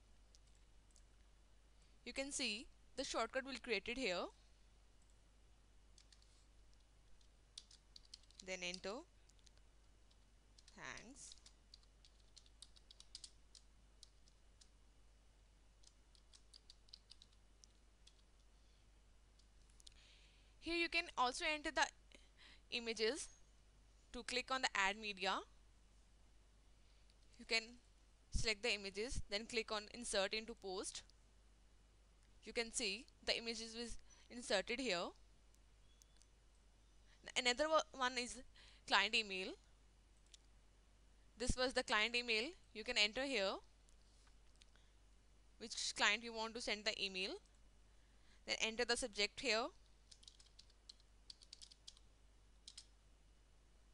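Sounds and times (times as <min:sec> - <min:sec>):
keyboard typing: 0:06.0 - 0:14.8, 0:15.8 - 0:18.5, 0:50.1 - 0:52.9
faint computer mouse clicks: 0:52.6 - 0:52.9.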